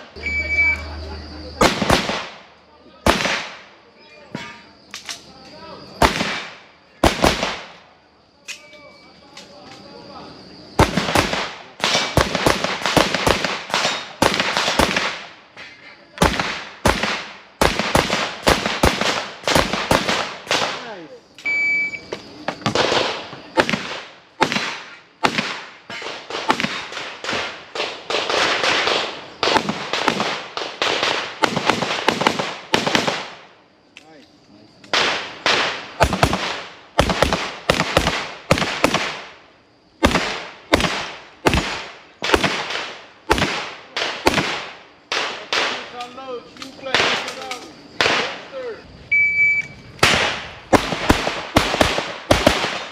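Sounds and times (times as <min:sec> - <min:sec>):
short high beep: 0:00.2 - 0:00.9, 0:21.5 - 0:22.1, 0:49.1 - 0:49.8.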